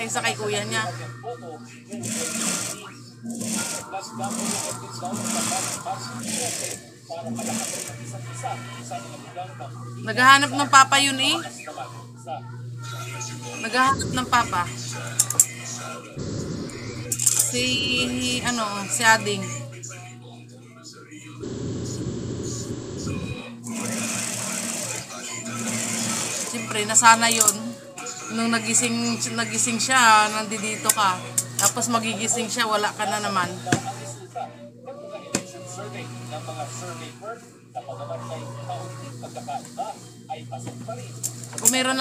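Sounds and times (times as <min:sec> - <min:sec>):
faint talk: 0:00.0 - 0:42.0
sewing machine running: 0:01.9 - 0:08.0, 0:13.8 - 0:14.8, 0:21.4 - 0:27.6
steady low hum: 0:11.5 - 0:20.6, 0:21.2 - 0:23.8.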